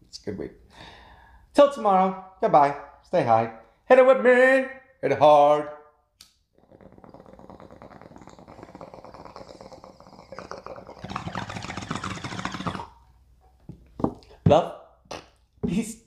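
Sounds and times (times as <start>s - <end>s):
water bubbling in a bong: 6.5s - 13.0s.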